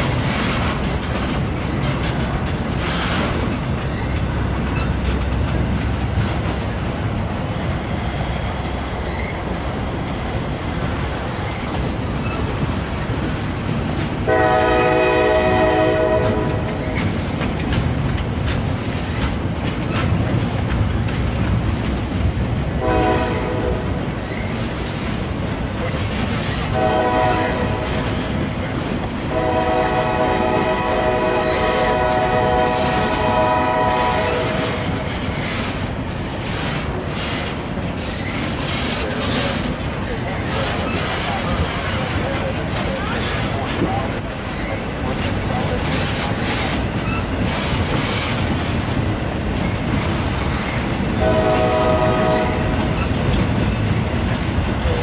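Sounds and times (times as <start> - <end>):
train wheels rumbling and clicking: 0.0 - 55.0
locomotive air horn blasts: 14.3 - 16.7, 22.8 - 24.0, 26.7 - 28.2, 29.3 - 35.0, 51.2 - 52.8.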